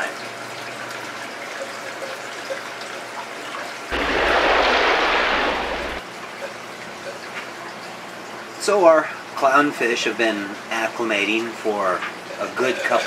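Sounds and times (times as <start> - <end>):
rush of water: 3.9 - 6.0.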